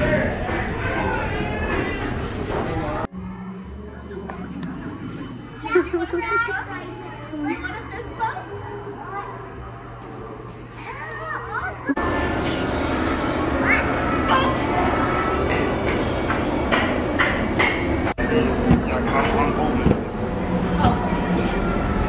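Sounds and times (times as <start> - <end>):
steady low hum: 0.1 - 22.0
young children talking and squealing: 10.7 - 12.0.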